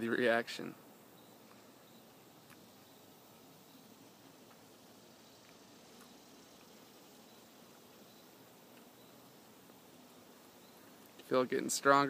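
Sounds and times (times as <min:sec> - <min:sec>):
faint outdoor hiss: 0:00.0 - 0:12.0
faint ticks: 0:01.2 - 0:03.0, 0:04.3 - 0:09.9, 0:10.6 - 0:11.4.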